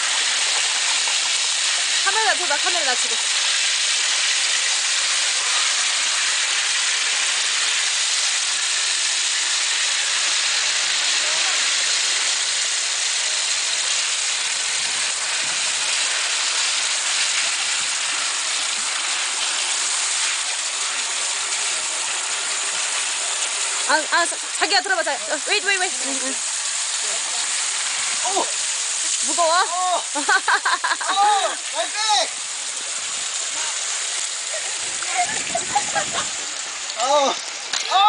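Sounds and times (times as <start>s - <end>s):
water gushing onto wooden tray: 0.0s - 38.0s.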